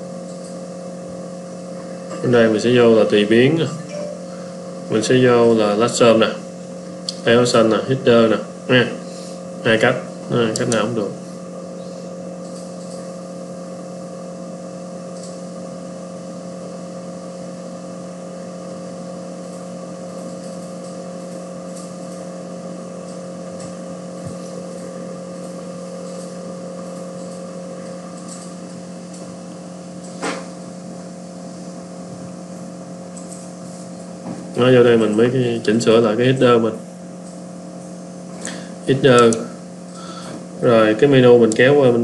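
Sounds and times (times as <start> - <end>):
room and equipment hum: 0.0 - 42.0.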